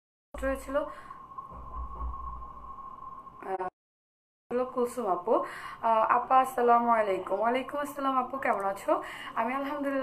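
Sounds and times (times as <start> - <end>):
low hum: 0.4 - 3.7
electronic tone: 1.1 - 3.7.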